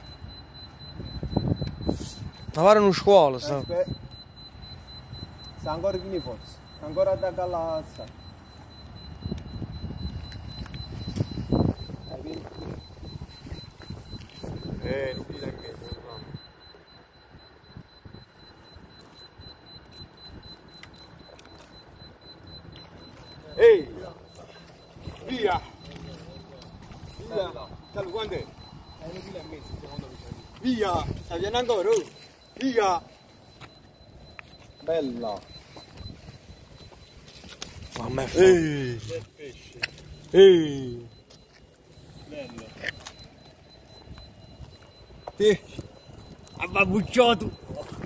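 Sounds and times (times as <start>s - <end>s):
pulsing high-pitched electronic tone: 0.0s - 48.0s.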